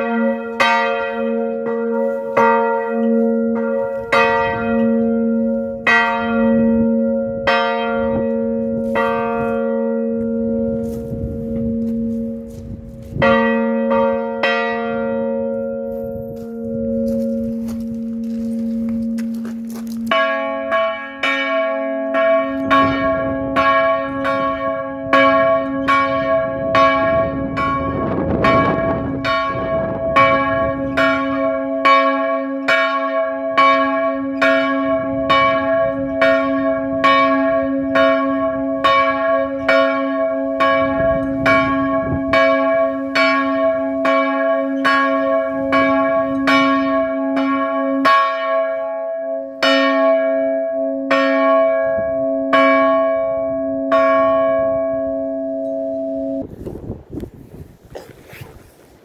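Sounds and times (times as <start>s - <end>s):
church bell ringing: 0.0s - 56.5s
deep bell hum: 0.0s - 56.5s.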